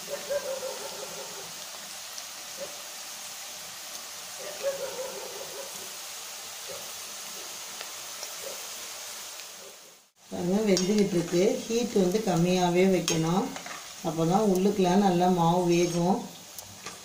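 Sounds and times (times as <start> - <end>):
frying in hot oil sizzle: 0.0 - 17.0.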